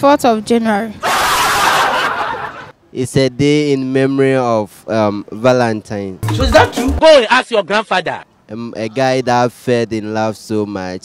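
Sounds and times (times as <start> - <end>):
young men laughing: 1.2 - 2.7.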